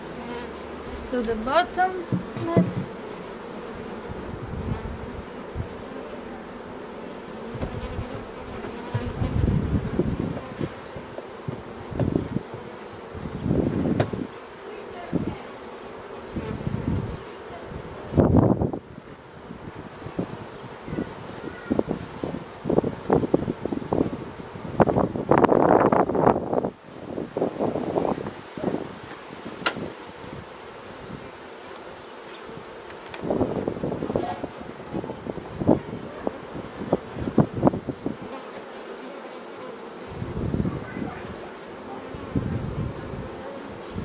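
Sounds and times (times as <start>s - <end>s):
honeybees buzzing: 0.0s - 44.0s
knocks of wooden hive parts: 2.1s - 3.0s, 29.0s - 29.9s.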